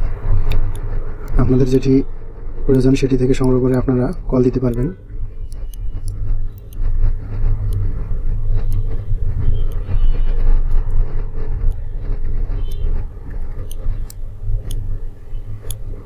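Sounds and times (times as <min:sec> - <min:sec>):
faint irregular clicks: 0:00.0 - 0:16.0
steady low rumble: 0:00.0 - 0:16.0.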